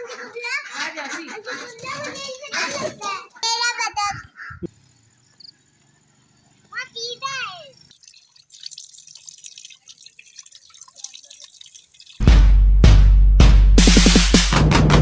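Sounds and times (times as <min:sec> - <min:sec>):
water running from tap splattering: 0:07.5 - 0:12.4
electronic music with heavy beat: 0:13.8 - 0:15.0.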